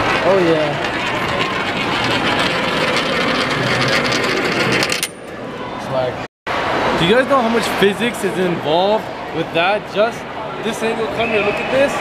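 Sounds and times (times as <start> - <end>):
coin rolling in a funnel: 0.0 - 5.2.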